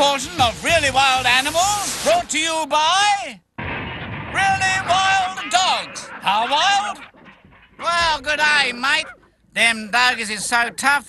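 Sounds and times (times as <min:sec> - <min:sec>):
dingoes whining and yelping: 0:05.4 - 0:10.9.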